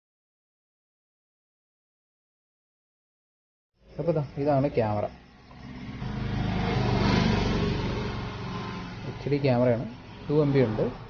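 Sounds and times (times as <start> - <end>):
motor vehicle passing by: 5.0 - 11.0.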